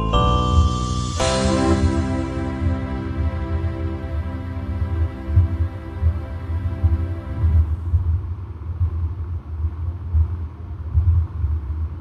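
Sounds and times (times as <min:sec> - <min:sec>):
loud low rumble: 0:00.9 - 0:08.3.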